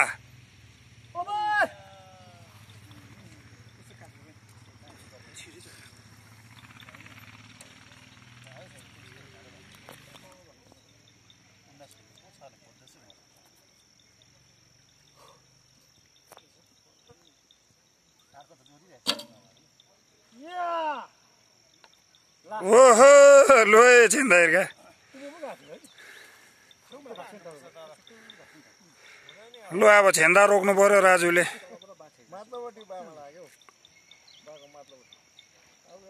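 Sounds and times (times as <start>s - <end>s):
faint distant voices: 1.1s - 15.5s
man shouting: 1.2s - 2.4s, 20.4s - 21.2s, 22.5s - 24.7s, 29.7s - 31.6s.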